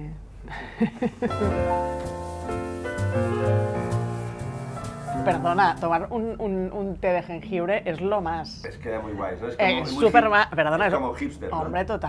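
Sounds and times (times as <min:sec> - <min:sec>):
piano music with held notes: 0:01.3 - 0:06.1.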